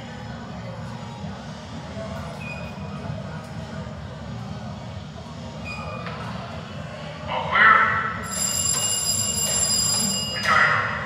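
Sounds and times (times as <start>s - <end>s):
bell ringing: 8.2s - 10.8s.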